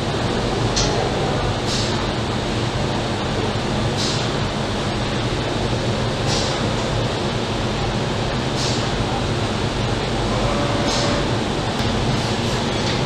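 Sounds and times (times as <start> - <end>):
factory machinery noise: 0.0 - 13.0
pneumatic valve air hiss: 1.7 - 2.0, 4.0 - 4.3, 6.3 - 6.6, 8.6 - 8.9.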